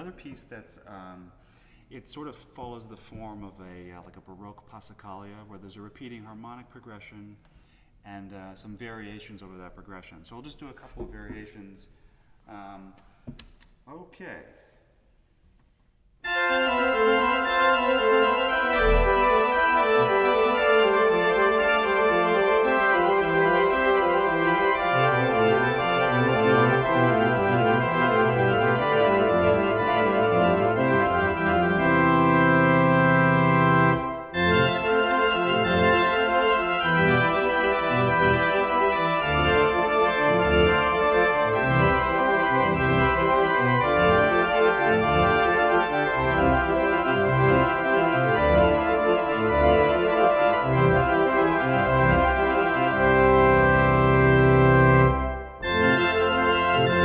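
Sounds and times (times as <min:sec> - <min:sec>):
pipe organ playing: 0:16.2 - 0:57.0.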